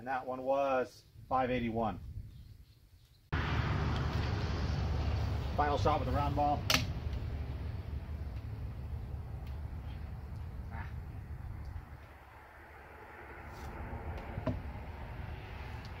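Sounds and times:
low background rumble: 0:03.4 - 0:16.0.

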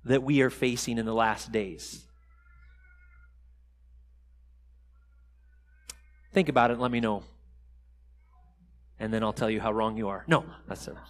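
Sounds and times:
faint high-pitched call: 0:02.1 - 0:03.4.

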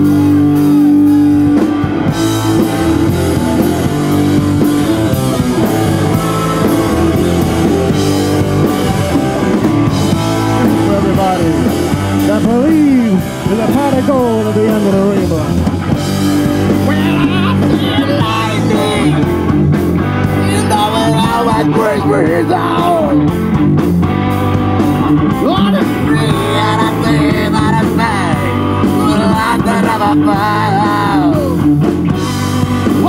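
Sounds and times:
bass guitar: 0:00.0 - 0:33.0
drum kit: 0:00.0 - 0:33.0
electric guitar: 0:00.0 - 0:33.0.

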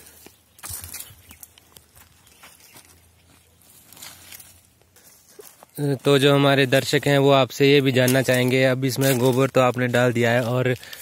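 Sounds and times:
scuffs and crunches on stony ground: 0:00.0 - 0:11.0.

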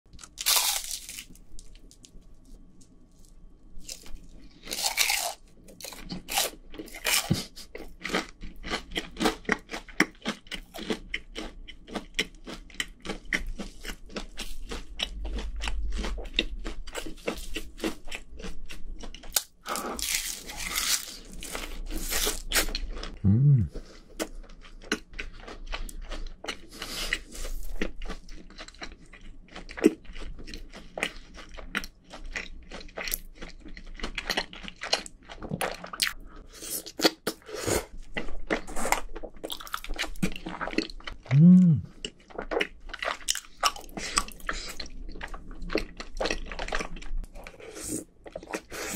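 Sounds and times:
crunching and chewing fried chicken: 0:00.1 - 0:23.2, 0:23.8 - 0:41.3, 0:41.9 - 0:48.9.

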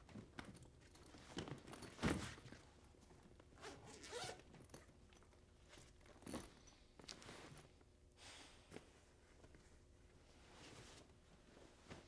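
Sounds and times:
bag zipper being pulled: 0:03.6 - 0:04.4.

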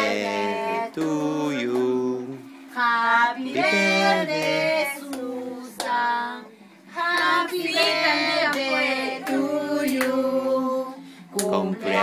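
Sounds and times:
group singing birthday song: 0:00.0 - 0:12.0.

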